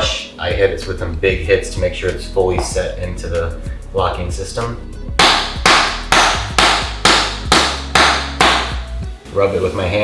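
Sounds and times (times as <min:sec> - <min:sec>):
rubber mallet striking vinyl plank: 0:05.2 - 0:08.8.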